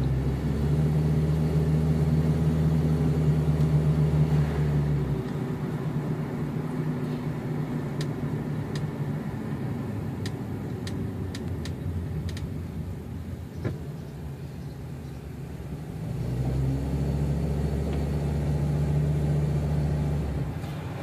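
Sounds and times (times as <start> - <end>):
car engine hum: 0.0 - 21.0
road rumble in car cabin: 0.0 - 21.0.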